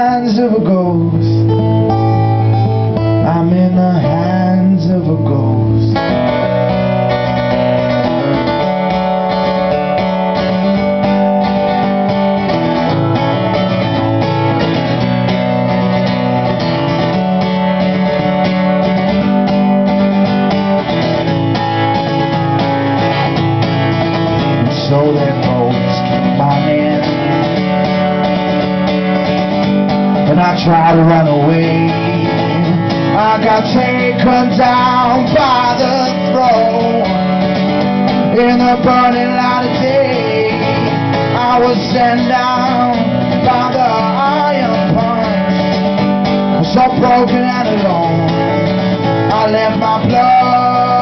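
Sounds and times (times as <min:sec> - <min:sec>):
acoustic guitar strumming: 0:00.0 - 0:51.0.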